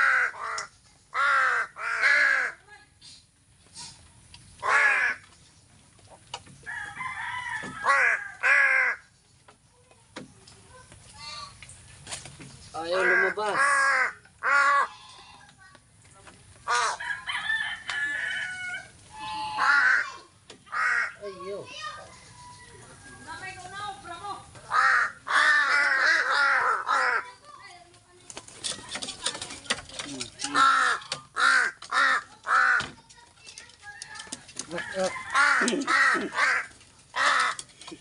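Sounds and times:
crows cawing: 0:00.0 - 0:02.6, 0:04.6 - 0:05.3, 0:07.0 - 0:09.1, 0:12.9 - 0:15.5, 0:16.6 - 0:21.8, 0:24.7 - 0:27.4, 0:30.4 - 0:33.1, 0:34.2 - 0:37.9.

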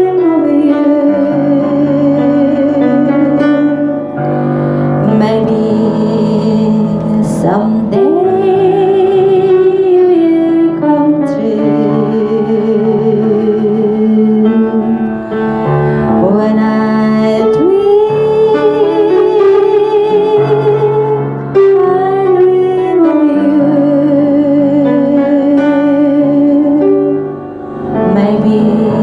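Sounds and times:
piano accompaniment: 0:00.0 - 0:29.0
woman singing a slow ballad: 0:04.9 - 0:15.3, 0:16.0 - 0:27.2, 0:28.0 - 0:29.0
woman singing pop ballad: 0:05.0 - 0:14.8.

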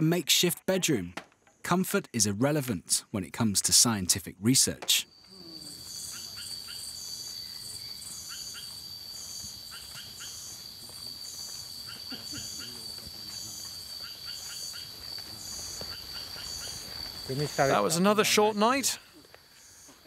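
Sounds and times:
short insect chirps: 0:05.0 - 0:18.0
insects high steady trill: 0:05.0 - 0:20.0
pulsed insect call: 0:05.0 - 0:20.0.

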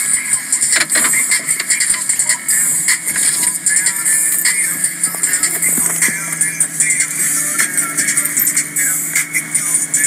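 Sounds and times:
car wash water spray: 0:00.0 - 0:08.1.

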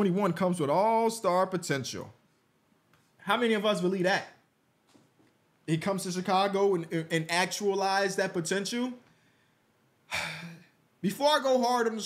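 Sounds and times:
man sighing: 0:10.1 - 0:10.8.

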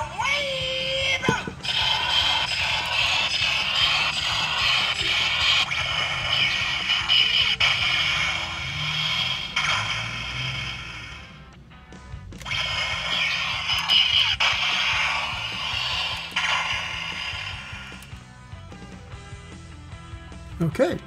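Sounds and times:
toy blaster hissing blasts: 0:00.0 - 0:11.5, 0:12.4 - 0:18.2
toy click: 0:01.5 - 0:10.7, 0:12.4 - 0:18.2.

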